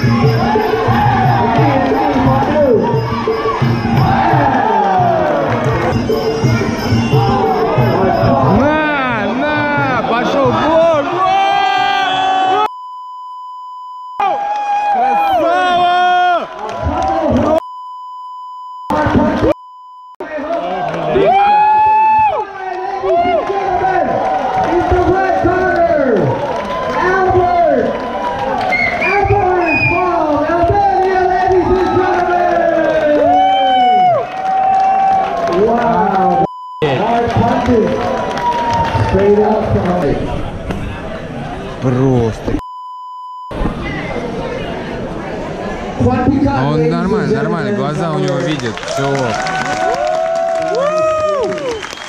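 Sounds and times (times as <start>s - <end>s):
people shouting: 0.0s - 12.7s, 14.2s - 17.6s
spectators shouting and cheering: 0.0s - 12.7s, 14.2s - 17.6s, 20.2s - 42.5s, 43.5s - 52.0s
loud drawn-out yells: 0.1s - 5.7s, 7.0s - 12.7s, 14.2s - 17.6s, 20.6s - 36.5s, 38.0s - 39.6s, 49.0s - 51.8s
censor bleep: 12.6s - 14.3s, 17.6s - 20.2s, 36.4s - 37.0s, 42.6s - 43.6s.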